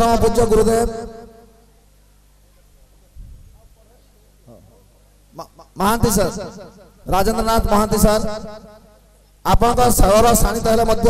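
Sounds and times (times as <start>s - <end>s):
amplified man's voice: 0.0s - 1.2s, 5.4s - 8.7s, 9.5s - 11.0s
low electrical hum: 0.0s - 11.0s.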